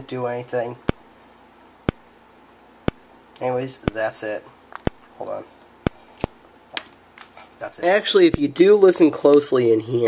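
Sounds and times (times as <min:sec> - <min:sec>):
strobe ticking: 0:01.8 - 0:02.2, 0:02.8 - 0:05.0, 0:07.8 - 0:09.6.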